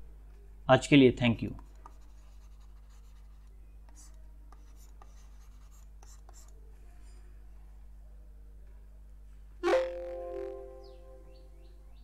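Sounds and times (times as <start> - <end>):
low electrical hum: 0.0 - 12.0
stylus writing on tablet: 1.5 - 6.6.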